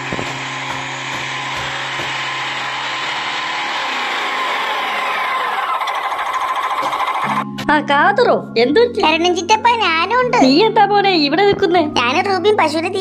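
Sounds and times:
small motor running: 0.0 - 7.4
fast rattling: 5.4 - 7.4.

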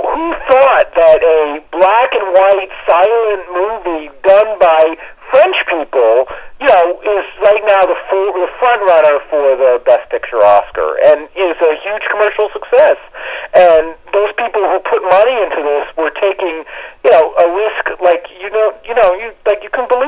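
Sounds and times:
person talking over telephone: 0.0 - 20.0.

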